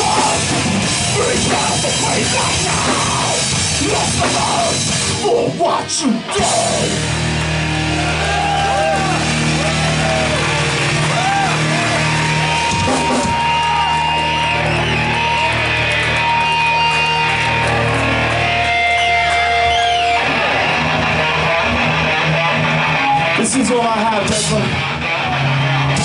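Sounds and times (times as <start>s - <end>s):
distorted electric guitars: 0.0s - 26.0s
sustained bass notes: 0.0s - 26.0s.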